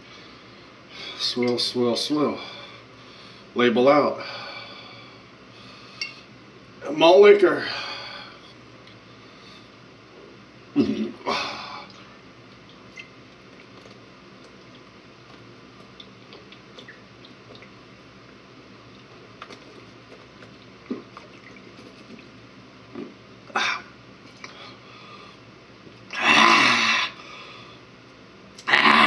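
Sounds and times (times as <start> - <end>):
faint liquid clicks: 11.9 - 22.3.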